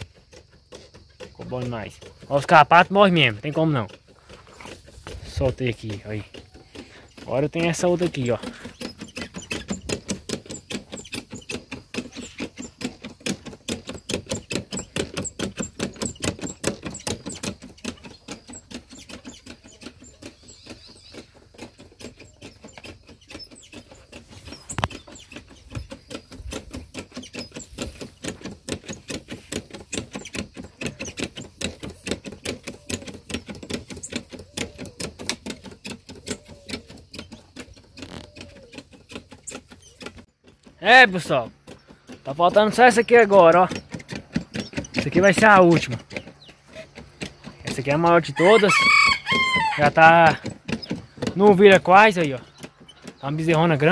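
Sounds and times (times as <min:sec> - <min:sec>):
sprayer pump squeaking and clicking: 0:00.0 - 0:53.9.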